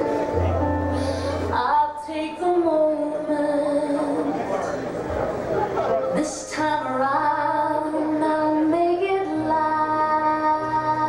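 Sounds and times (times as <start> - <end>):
high singing voice: 6.1 - 11.0.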